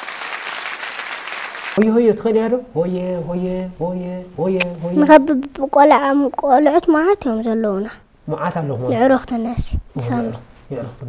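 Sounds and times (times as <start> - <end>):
hand-clapping applause: 0.0 - 1.8.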